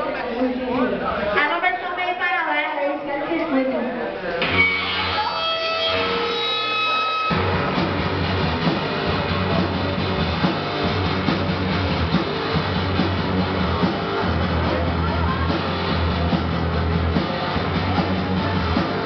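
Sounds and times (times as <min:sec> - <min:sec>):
electric guitar notes ringing: 0:04.4 - 0:09.4
punk rock band playing: 0:04.4 - 0:19.0.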